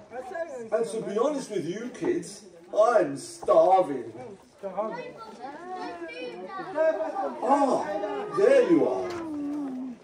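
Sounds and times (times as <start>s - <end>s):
children calling out: 5.0s - 10.0s.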